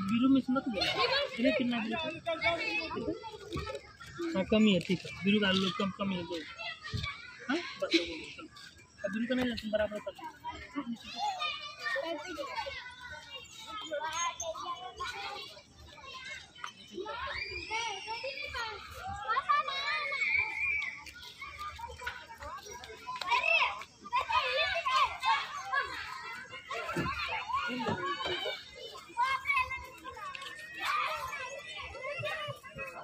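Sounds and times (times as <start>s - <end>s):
children calling and chattering: 0.0s - 33.0s.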